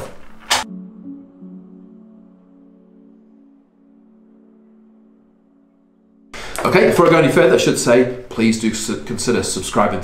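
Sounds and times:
soft sustained background music: 0.6 - 8.0.

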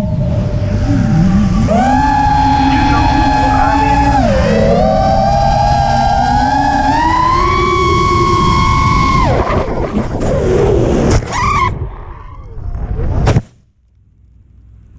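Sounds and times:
quadcopter motors whining: 0.0 - 9.4.

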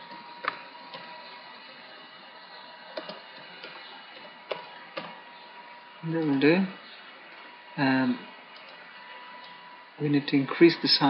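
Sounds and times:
keyboard keys clicking: 3.0 - 5.1.

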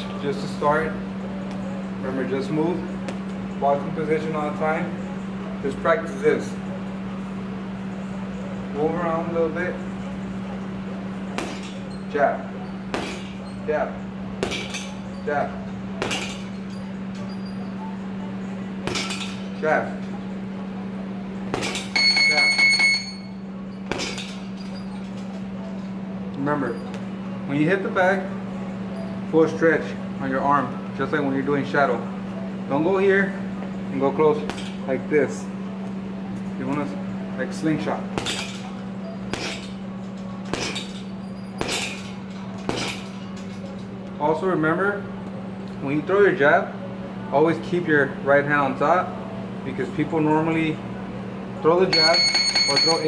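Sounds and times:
steady low hum: 0.0 - 53.0
gloves thudding on punching bag: 11.3 - 11.8, 12.9 - 13.4, 14.4 - 14.9, 16.0 - 16.5, 21.5 - 22.0, 23.9 - 24.4, 34.4 - 34.8, 38.1 - 38.7, 39.3 - 39.8, 40.4 - 41.0, 41.6 - 42.0, 42.6 - 43.1
high-pitched metallic ringing: 21.6 - 25.2, 51.9 - 53.0.

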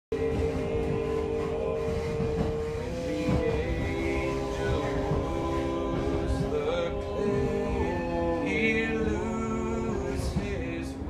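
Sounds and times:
electric train rumbling: 0.1 - 11.0
men singing a cappella harmony: 0.1 - 11.0.

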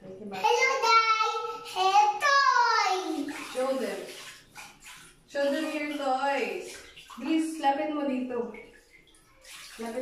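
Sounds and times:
toddler talking and exclaiming: 0.4 - 3.4.

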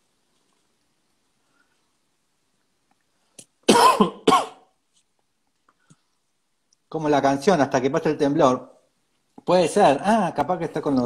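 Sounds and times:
man coughing: 3.7 - 4.6.

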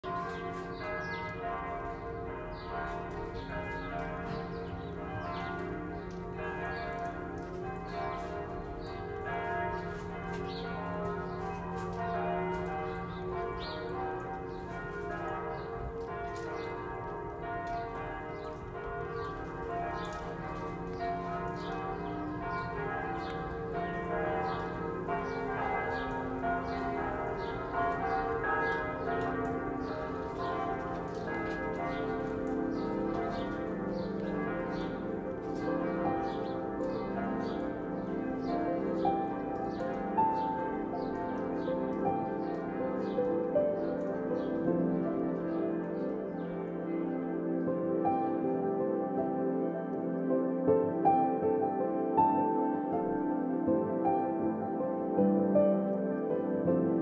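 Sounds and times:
church bells ringing: 0.0 - 57.0.

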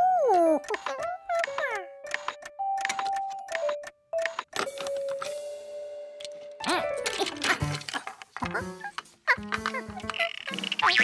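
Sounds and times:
background music long notes: 0.0 - 10.7.

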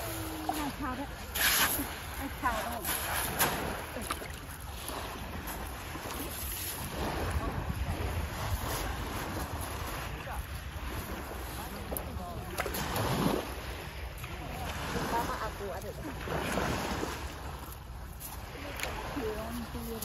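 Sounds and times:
surf washing on shore: 0.0 - 20.0
wind rumbling on microphone: 0.0 - 20.0.

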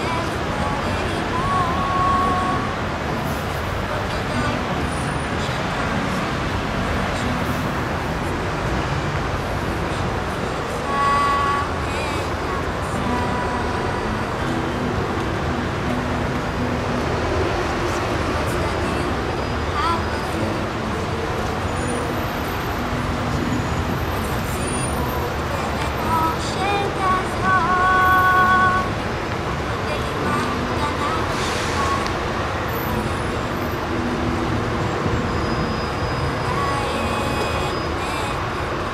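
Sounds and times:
acoustic guitar: 0.0 - 38.9
road traffic noise: 0.0 - 38.9.

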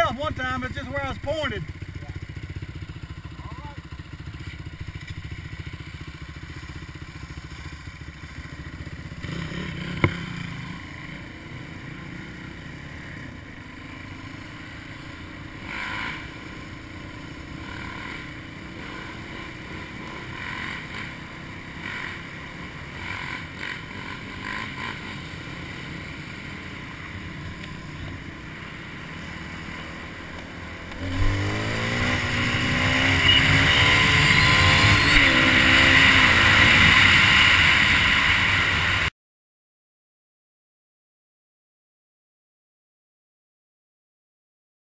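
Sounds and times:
motorcycle engine running: 0.0 - 39.1.

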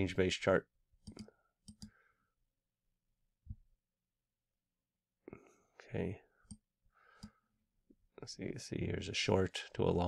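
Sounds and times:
computer mouse clicks: 1.0 - 2.0.

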